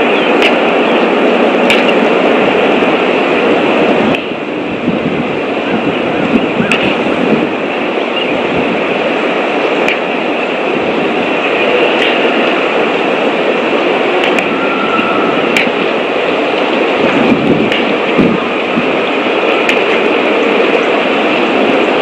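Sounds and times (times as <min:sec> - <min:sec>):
steady rushing noise: 0:00.0 - 0:22.0.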